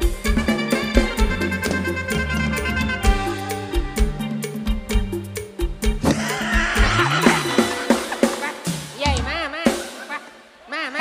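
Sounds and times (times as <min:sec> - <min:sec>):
drum strokes: 0:00.0 - 0:10.4
band music: 0:00.0 - 0:11.0.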